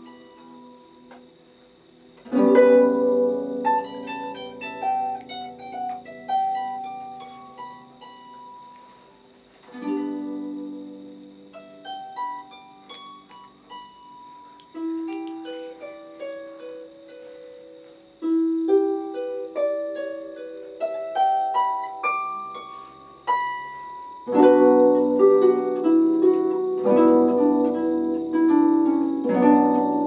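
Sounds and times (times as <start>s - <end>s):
harp playing: 0.0s - 30.0s.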